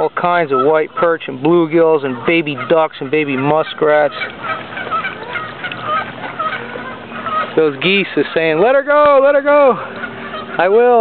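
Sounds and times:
geese honking: 0.0s - 11.0s.

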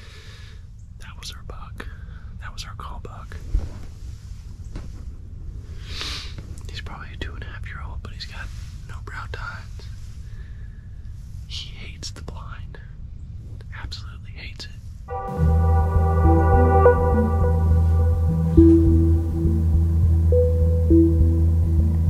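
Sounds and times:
man whispering: 1.0s - 3.5s, 6.6s - 10.0s, 11.5s - 13.0s, 13.6s - 14.8s
low background rumble: 4.1s - 22.0s.

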